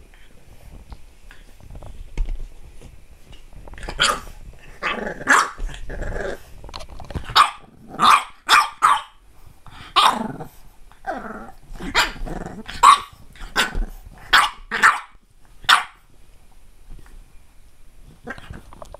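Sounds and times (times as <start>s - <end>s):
puppy growling: 3.8s - 8.5s, 9.7s - 15.0s, 18.1s - 18.9s
puppy barking: 4.0s - 5.6s, 7.3s - 9.2s, 10.0s - 10.2s, 11.9s - 16.0s.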